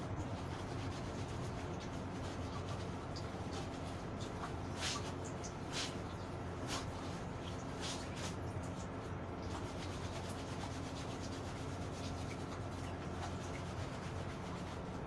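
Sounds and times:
steady low hum: 0:00.0 - 0:15.0
wet clothes scrubbed by hand: 0:00.0 - 0:15.0.

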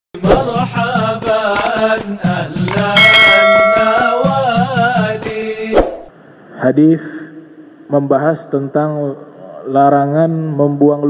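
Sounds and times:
intro music with wavering melody: 0:02.7 - 0:05.0
bright bell chime: 0:03.0 - 0:04.4.

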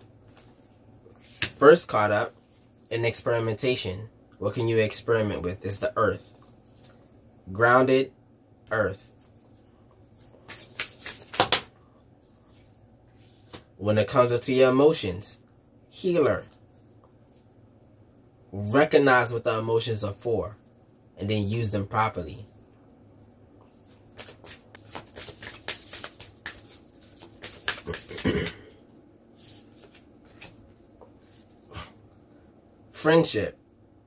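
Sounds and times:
cards being shuffled: 0:00.3 - 0:01.6, 0:10.2 - 0:11.7, 0:23.7 - 0:28.4, 0:29.4 - 0:31.6.

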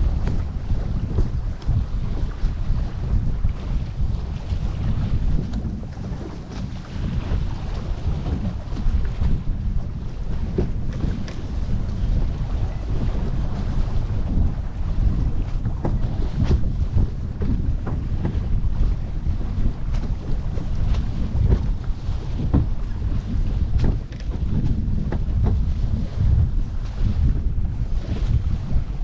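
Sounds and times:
water rushing past boat: 0:00.0 - 0:29.0
water splashing and slapping: 0:00.0 - 0:29.0
wind buffeting microphone: 0:00.0 - 0:29.0.

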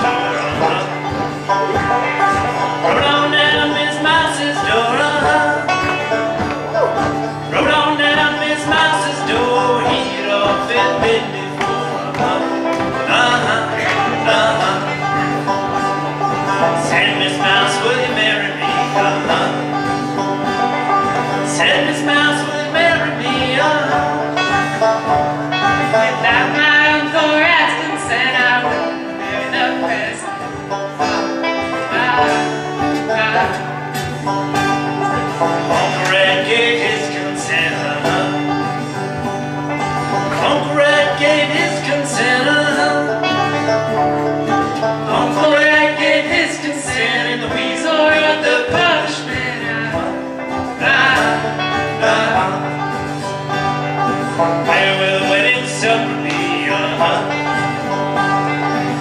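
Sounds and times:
person singing: 0:00.0 - 0:19.8, 0:20.6 - 0:30.4, 0:31.0 - 0:33.8, 0:35.0 - 0:38.7, 0:40.2 - 0:43.6, 0:44.8 - 0:53.4, 0:54.6 - 0:57.6
acoustic guitar: 0:00.0 - 0:59.0
banjo picking: 0:00.0 - 0:59.0.

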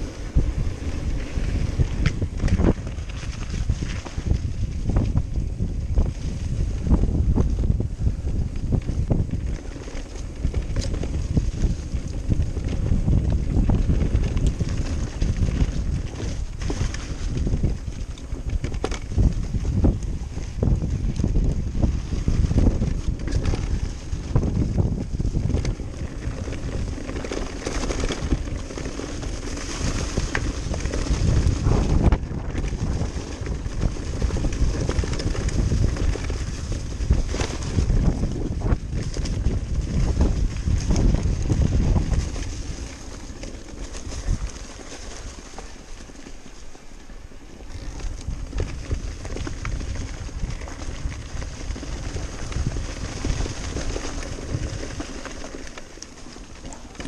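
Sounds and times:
bike rattling and knocking: 0:00.0 - 0:57.0
tyres rumbling over dirt: 0:00.0 - 0:57.0
wind buffeting microphone: 0:00.0 - 0:57.0.

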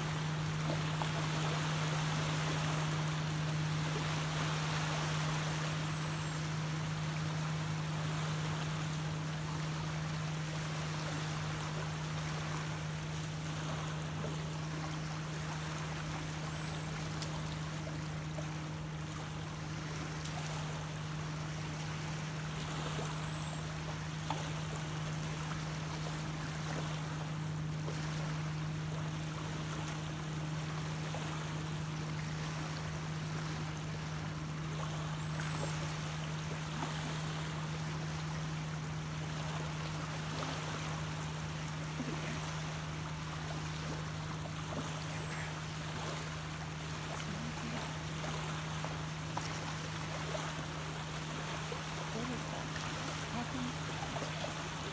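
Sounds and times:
small waves lapping on shore: 0:00.0 - 0:54.9
steady low hum: 0:00.0 - 0:54.9.

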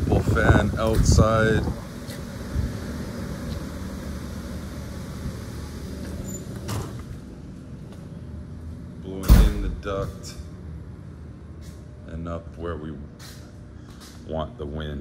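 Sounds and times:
electric fan whirring: 0:00.0 - 0:14.4.

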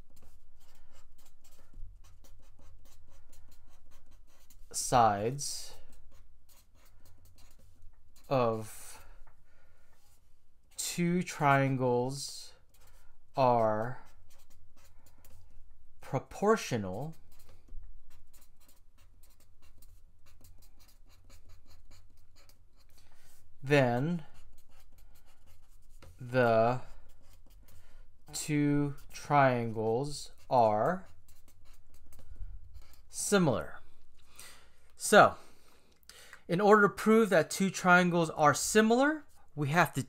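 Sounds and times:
marker pen writing on paper: 0:00.0 - 0:09.2, 0:10.0 - 0:33.3.

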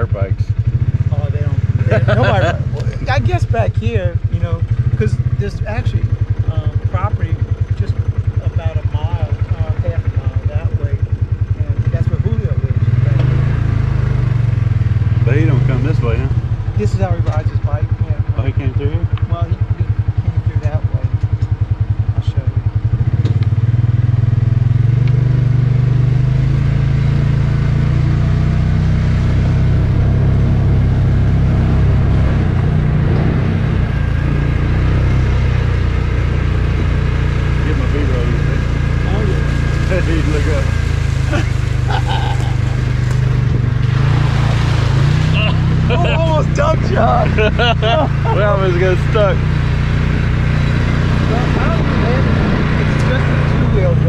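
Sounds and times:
voices talking: 0:00.0 - 0:23.0, 0:28.0 - 0:54.0
utility vehicle engine running: 0:00.0 - 0:54.0.

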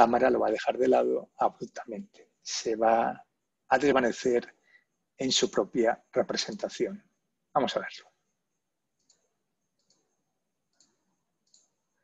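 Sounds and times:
computer mouse clicks: 0:08.9 - 0:12.0.

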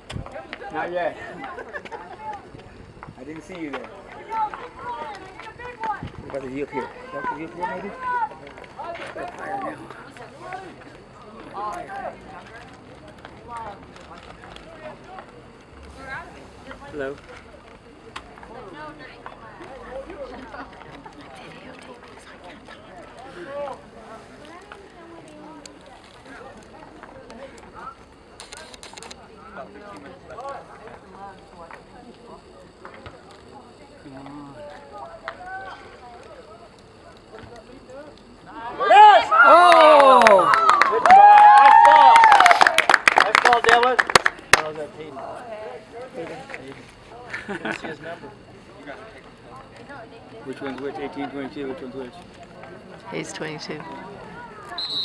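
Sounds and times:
indistinct talk: 0:00.0 - 0:55.0
outdoor background noise: 0:00.0 - 0:55.0
steady background hiss: 0:00.0 - 0:55.0
distant voices shouting: 0:00.3 - 0:12.8, 0:33.4 - 0:43.0
loud call: 0:38.6 - 0:43.2, 0:54.6 - 0:55.0.

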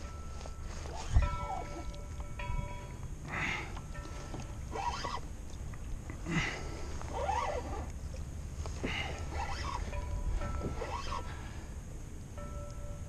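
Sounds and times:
wind and water rumble: 0:00.0 - 0:13.0.

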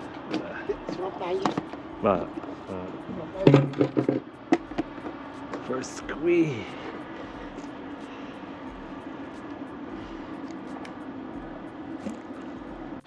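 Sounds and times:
low hum: 0:00.0 - 0:13.0
steady mechanical drone: 0:00.0 - 0:13.0.

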